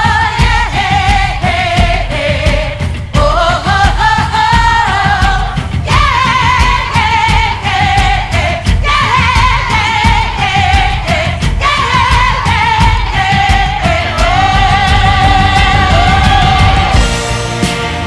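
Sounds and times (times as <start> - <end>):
band with drums and bass: 0.0 - 18.0.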